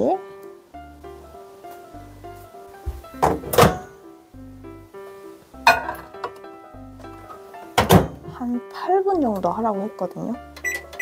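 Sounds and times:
light background music: 0.0s - 11.0s
microwave door thunks and clunks: 3.2s - 4.0s, 7.7s - 8.3s.

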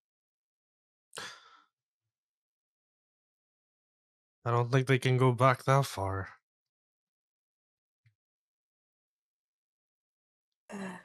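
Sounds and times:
person sighing: 1.2s - 1.5s.

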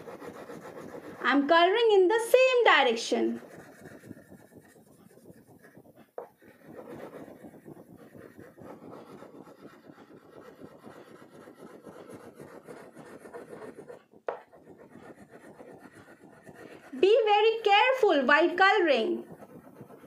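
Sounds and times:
crayon rubbing on paper: 0.0s - 20.0s.

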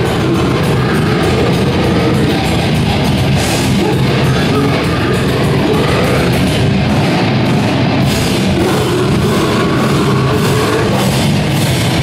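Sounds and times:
heavy rock band playing: 0.0s - 12.0s.

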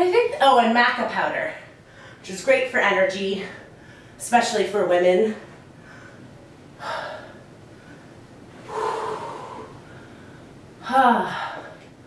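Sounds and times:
woman breathing hard: 5.8s - 10.6s.

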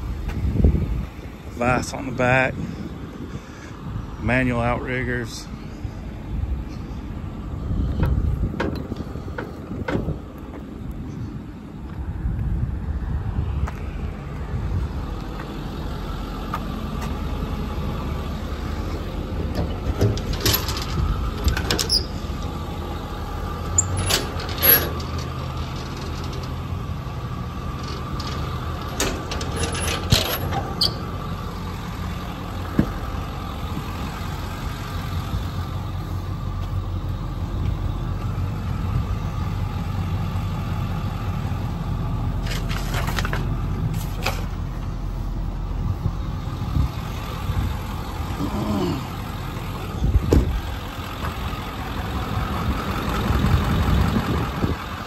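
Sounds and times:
truck engine idling: 0.0s - 55.0s
metal latches clicking and clunking: 19.5s - 22.2s, 23.7s - 26.6s, 27.8s - 31.0s.

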